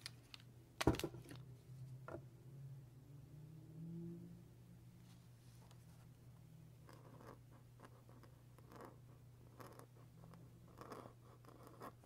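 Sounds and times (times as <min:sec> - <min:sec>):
pen scratching on paper: 0:06.9 - 0:12.0.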